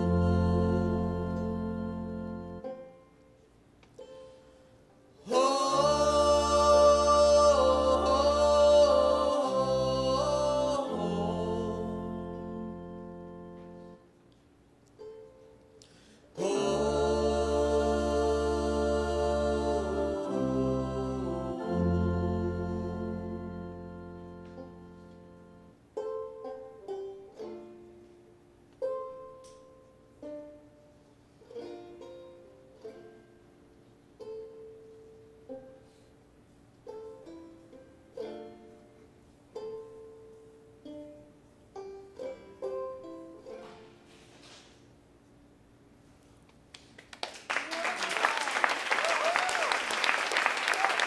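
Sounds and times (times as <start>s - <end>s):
banjo picking slow notes: 0.0s - 44.7s.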